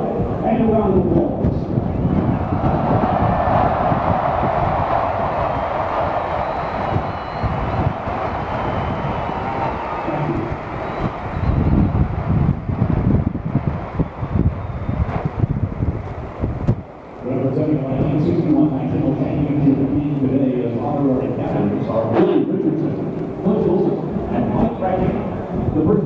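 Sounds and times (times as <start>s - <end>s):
wind buffeting microphone: 0.0s - 26.0s
stadium crowd cheering: 1.8s - 25.4s.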